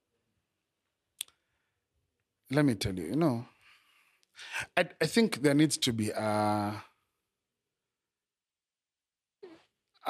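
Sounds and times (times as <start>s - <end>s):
man talking: 2.5s - 3.6s, 4.4s - 6.9s.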